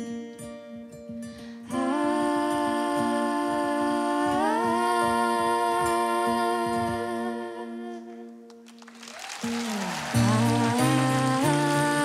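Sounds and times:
women humming in harmony: 0:09.6 - 0:12.0.

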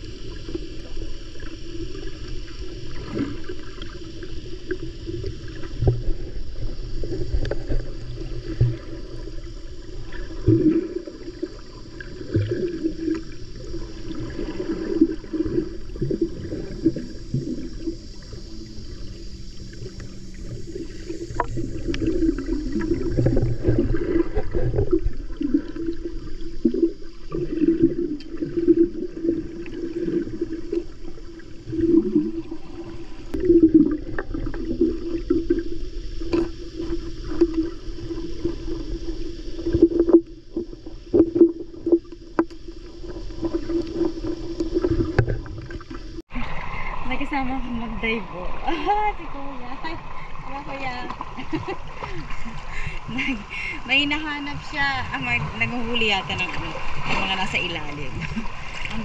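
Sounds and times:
low underwater rumble: 0:00.0 - 0:59.0
underwater water swishing and gurgling: 0:00.0 - 0:59.0.

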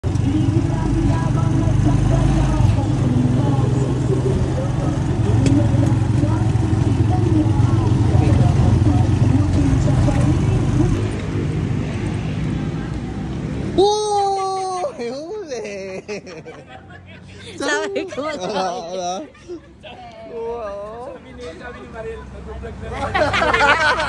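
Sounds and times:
indistinct voices: 0:00.0 - 0:11.2
motorcycle engine drone: 0:00.0 - 0:14.1
road noise: 0:00.0 - 0:24.0.

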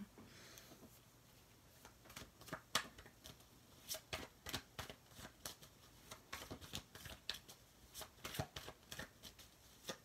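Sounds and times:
cards being shuffled: 0:01.7 - 0:10.0.

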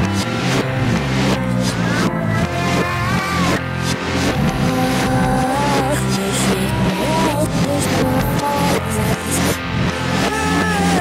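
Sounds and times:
backwards guitars bass and drums: 0:00.0 - 0:11.0
backwards vocals: 0:01.6 - 0:11.0.

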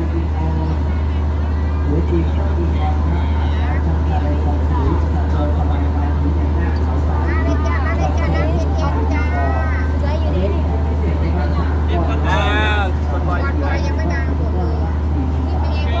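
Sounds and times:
diesel generator humming: 0:00.0 - 0:16.0
people talking: 0:00.0 - 0:16.0.

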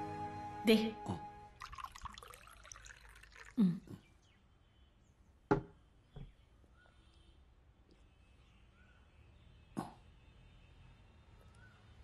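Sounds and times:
drink poured into a glass: 0:01.6 - 0:03.6.

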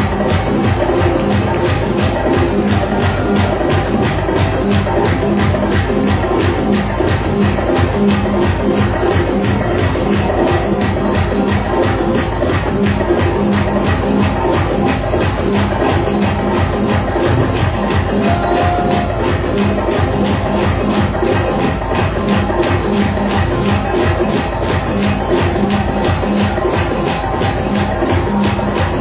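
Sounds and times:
congregation clapping: 0:00.0 - 0:29.0
electronic keyboard with fast beat: 0:00.0 - 0:29.0.

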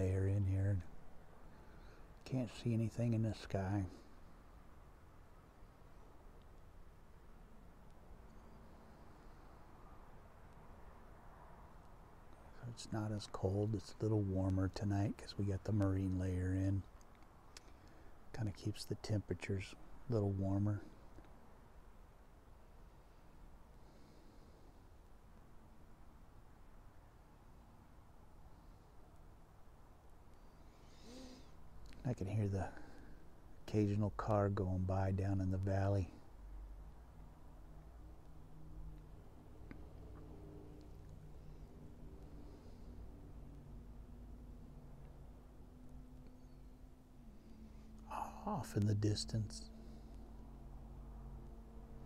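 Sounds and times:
faint background hiss: 0:00.0 - 0:52.0.

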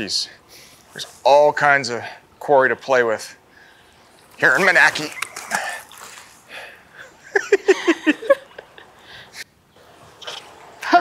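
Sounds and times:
person laughing: 0:05.0 - 0:06.0, 0:07.0 - 0:09.0.

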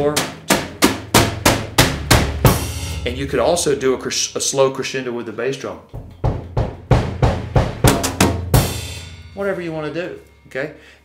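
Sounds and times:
drum fill on toms: 0:00.0 - 0:04.0, 0:05.9 - 0:09.7.

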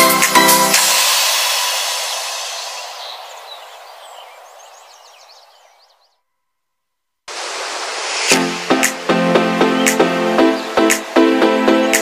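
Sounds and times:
electronic music: 0:00.0 - 0:03.2, 0:08.2 - 0:12.0
hiss-like noise: 0:00.1 - 0:05.1, 0:07.3 - 0:08.6.

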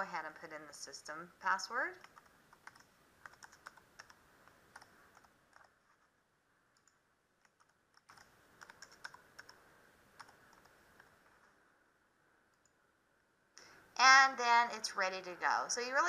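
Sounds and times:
faint keyboard typing: 0:01.9 - 0:11.6, 0:12.5 - 0:12.8.

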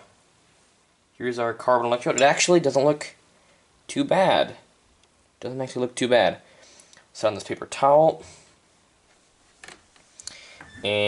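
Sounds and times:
person speaking: 0:01.2 - 0:03.2, 0:10.3 - 0:11.0.

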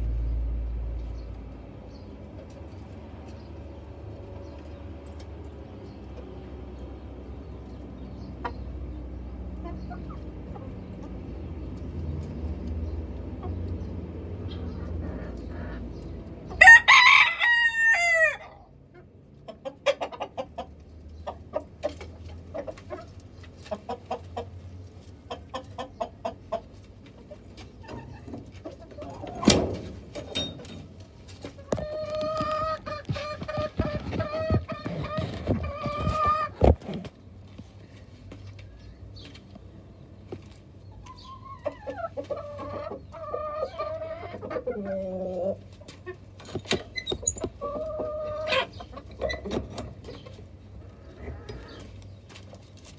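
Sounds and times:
hens clucking: 0:01.9 - 0:52.9
rooster crowing: 0:16.6 - 0:18.6.

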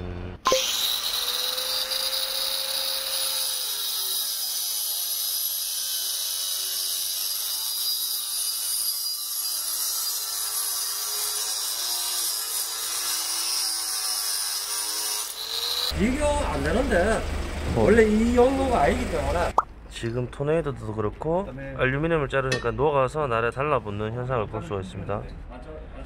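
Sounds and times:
angle grinder cutting metal pipe: 0:00.4 - 0:17.2.

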